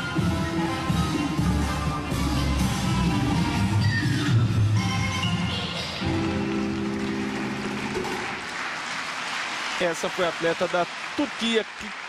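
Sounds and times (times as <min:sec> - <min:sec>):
audience applause: 0:06.2 - 0:12.0.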